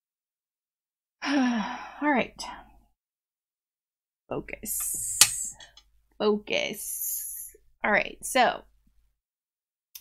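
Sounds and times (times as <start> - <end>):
woman sighing: 1.2 - 2.1.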